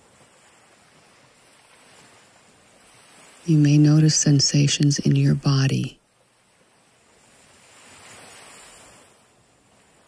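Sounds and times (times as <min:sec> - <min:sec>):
faint wave washing onto shore: 0:00.0 - 0:05.1, 0:06.2 - 0:10.0.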